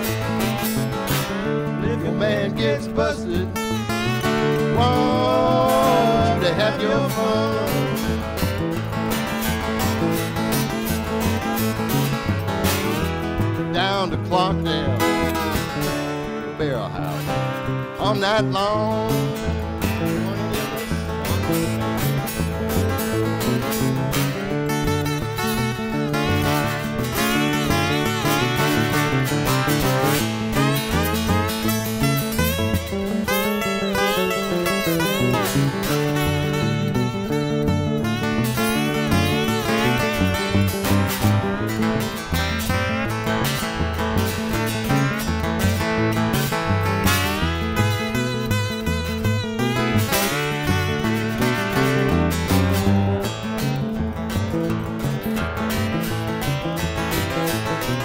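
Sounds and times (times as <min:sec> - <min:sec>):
slide guitar lead: 0:00.0 - 0:58.0
strummed electric guitar chords: 0:00.0 - 0:58.0.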